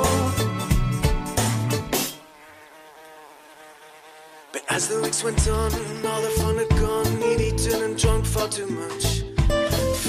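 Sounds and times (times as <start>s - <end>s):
song music: 0.0s - 2.1s, 4.7s - 10.0s
bee buzzing drone: 0.0s - 7.8s.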